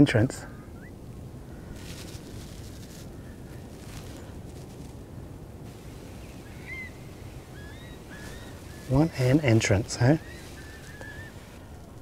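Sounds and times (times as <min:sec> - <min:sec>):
low background rumble: 0:00.0 - 0:12.0
rising whistled curlew calls: 0:00.5 - 0:01.0, 0:06.1 - 0:11.6.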